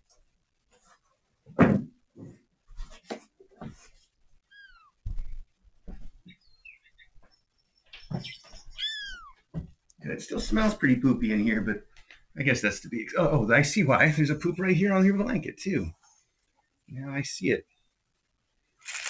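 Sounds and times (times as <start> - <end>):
faint kitten chirps: 4.5 - 5.0, 8.7 - 9.4
thumps of someone moving: 5.0 - 6.3, 9.5 - 9.8
kittens mewing: 8.7 - 9.4.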